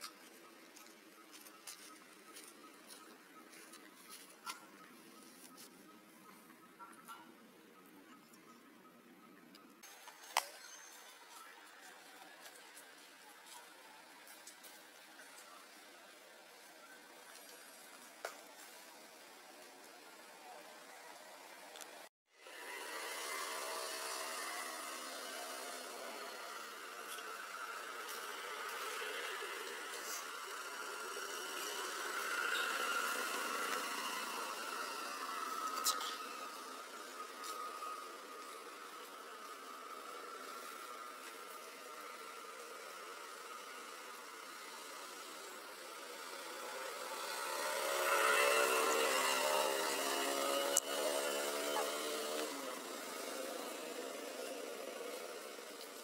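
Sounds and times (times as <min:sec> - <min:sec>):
outdoor background buzz: 0:00.0 - 0:56.0.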